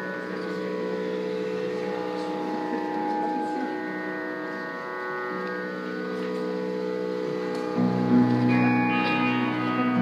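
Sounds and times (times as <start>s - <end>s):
harmonica droning chord: 0.0s - 10.0s
acoustic guitar: 7.5s - 10.0s.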